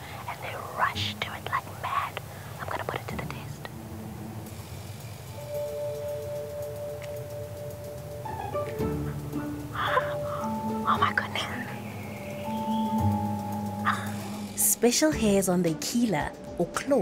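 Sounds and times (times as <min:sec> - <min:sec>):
woman whispering: 0:00.0 - 0:03.7, 0:09.8 - 0:11.8
soft background music: 0:00.0 - 0:17.0.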